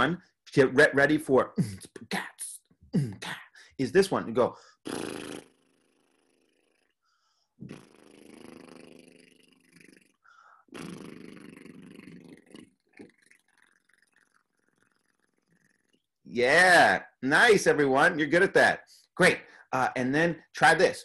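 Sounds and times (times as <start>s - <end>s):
man doing a lip trill: 4.8s - 6.8s, 7.6s - 16.1s.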